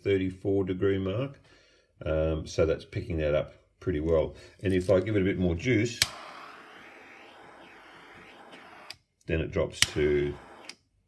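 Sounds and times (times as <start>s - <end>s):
heat gun blowing hot air: 6.0s - 9.0s, 9.8s - 10.8s
heat gun switch click: 6.0s - 9.0s, 9.8s - 10.8s.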